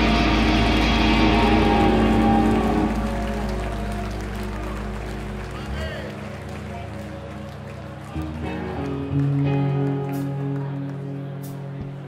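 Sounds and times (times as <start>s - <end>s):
drums: 0.0s - 5.4s, 11.4s - 12.0s
bass guitar: 0.0s - 12.0s
electric guitars: 0.0s - 12.0s.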